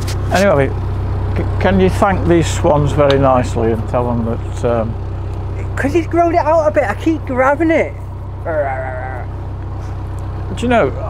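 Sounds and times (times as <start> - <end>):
boat engine throbbing: 0.0 - 11.0.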